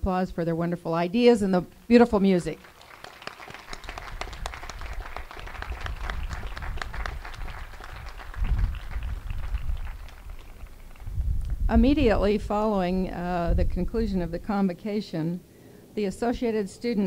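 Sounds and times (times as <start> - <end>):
audience applauding: 2.6 - 11.3.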